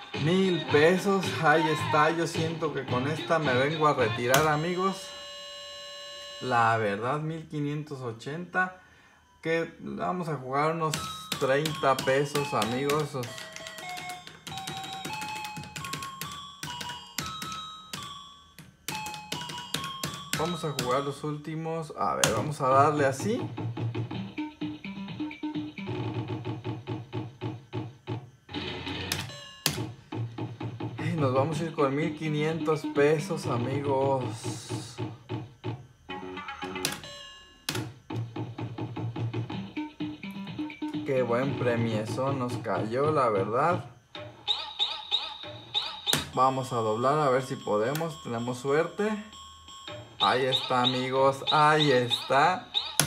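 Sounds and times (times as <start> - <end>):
slot machine beeps: 0.2 - 7.0, 9.4 - 18.3, 18.9 - 26.3, 28.5 - 34.9, 36.1 - 38.9, 44.2 - 53.0.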